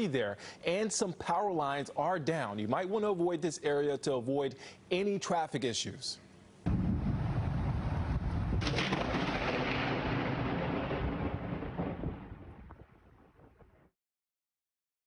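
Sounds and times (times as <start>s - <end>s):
thunder rumbling: 6.7s - 13.9s.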